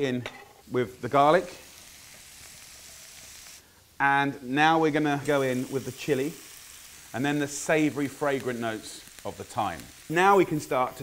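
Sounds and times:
oil sizzling in frying pan: 0.5 - 11.0.

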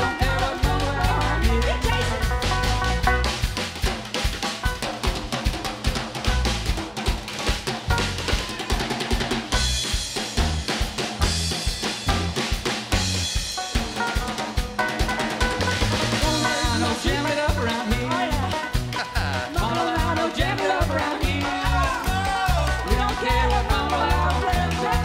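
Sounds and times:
guitar lines: 0.0 - 3.9, 11.2 - 25.0
live band playing: 0.0 - 25.0.

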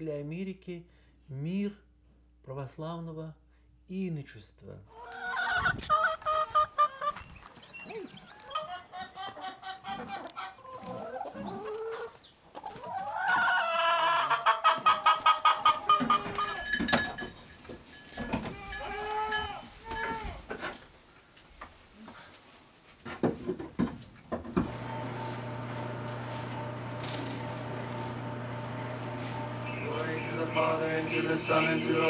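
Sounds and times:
chickens clucking: 4.9 - 16.7, 24.6 - 32.0.

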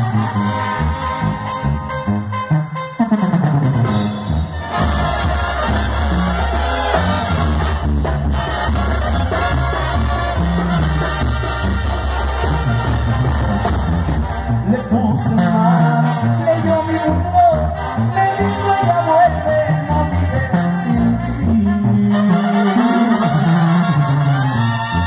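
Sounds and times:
brass band playing: 0.0 - 25.0.

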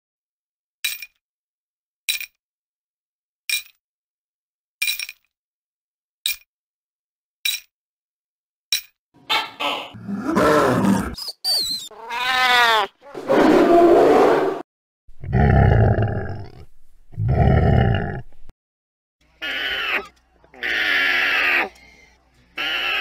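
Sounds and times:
animal roars and growls: 9.9 - 11.2, 13.0 - 18.4
alpaca call: 11.9 - 12.9, 19.4 - 21.8, 22.6 - 23.0.

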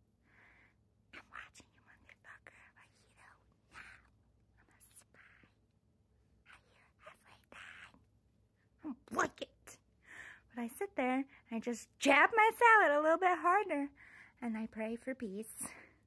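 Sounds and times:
woman whispering: 1.1 - 5.6, 6.4 - 8.1.

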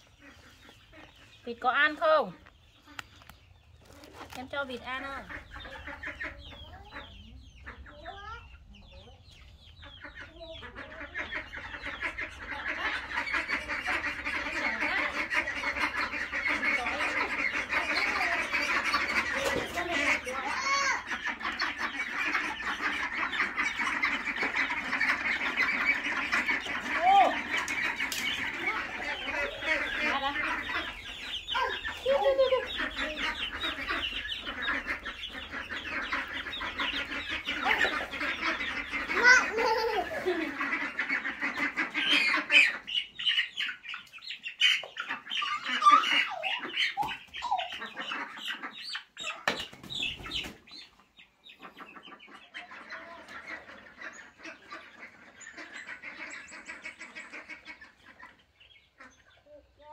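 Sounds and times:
ducklings and chicks calling: 0.0 - 59.9.

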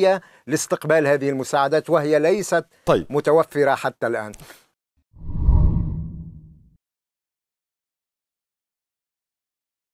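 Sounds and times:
deep whoosh: 5.2 - 6.7.

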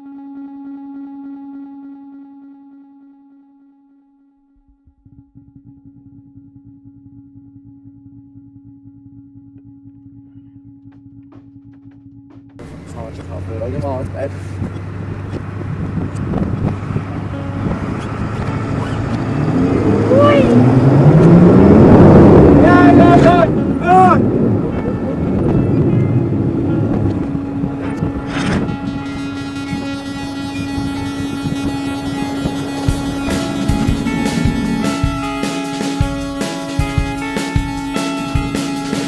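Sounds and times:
music: 0.0 - 13.9, 17.2 - 20.6, 22.2 - 39.0
vehicle engine revving: 12.6 - 39.0
people shouting: 22.6 - 24.2.

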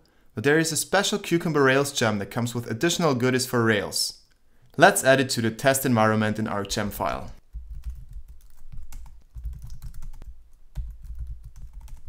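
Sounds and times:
keyboard typing: 6.7 - 12.0.

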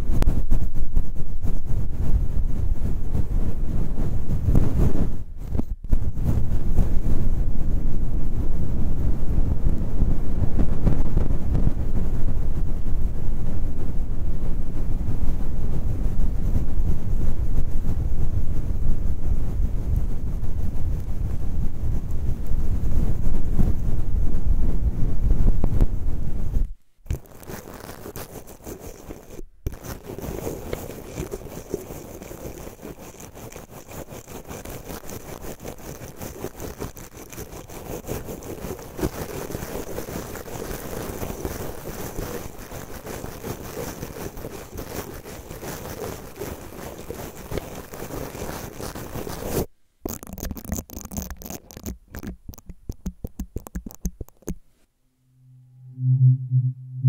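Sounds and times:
brush rubbing on microphone: 0.0 - 24.2, 25.3 - 54.7
small brush short strokes: 26.6 - 57.0
toothbrush scratching mic grilles: 27.1 - 54.6.

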